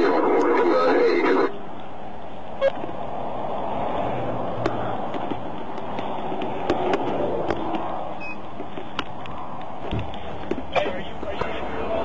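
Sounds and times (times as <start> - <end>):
car fire rushing: 0.0 - 12.0.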